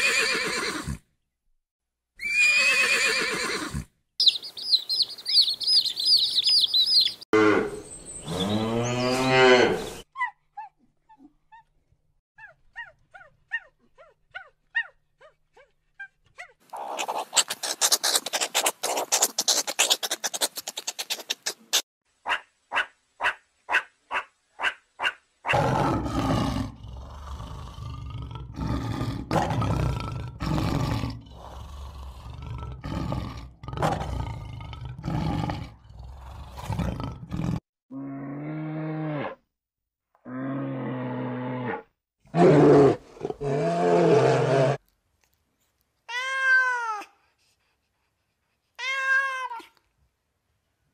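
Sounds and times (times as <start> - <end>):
evenly spaced animal calls: 2.2 - 9.0, 16.7 - 25.6
rapid chattering animal calls: 4.2 - 7.2, 16.7 - 21.8
short animal chirps: 4.2 - 7.2
animal growls and roars: 7.4 - 10.0, 25.5 - 39.5, 40.2 - 44.8.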